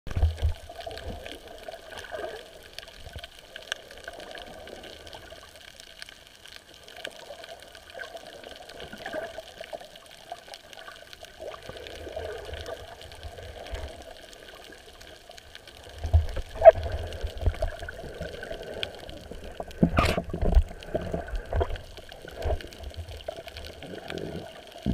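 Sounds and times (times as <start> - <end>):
small clicks and crackles: 0.1 - 24.9
water moving underwater: 0.1 - 24.9.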